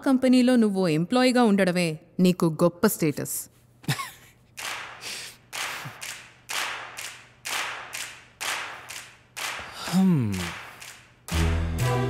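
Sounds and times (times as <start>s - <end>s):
slow hand clapping: 4.5s - 11.9s.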